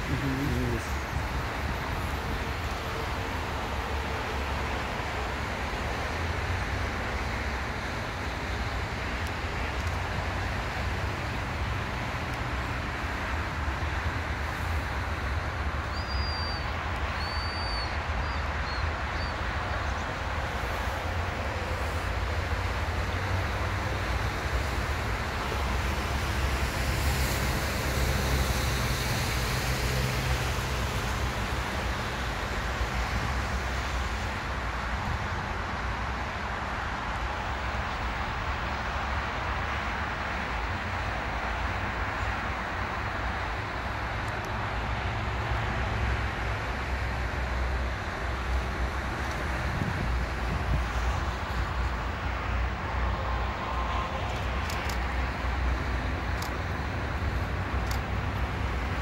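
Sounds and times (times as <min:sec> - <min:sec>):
highway traffic rumble: 0:00.0 - 0:59.0.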